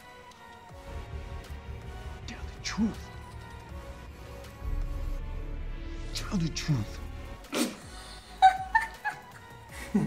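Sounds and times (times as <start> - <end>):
quiet background music: 0.0 - 10.0
woman's squealing laughter: 8.4 - 9.4.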